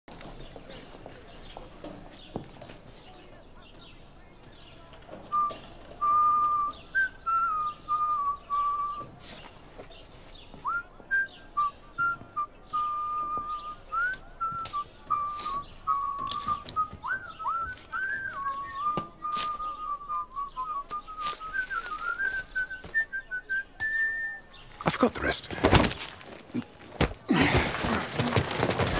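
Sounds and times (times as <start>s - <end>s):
man whistling a tune: 5.3s - 9.3s, 10.6s - 24.5s.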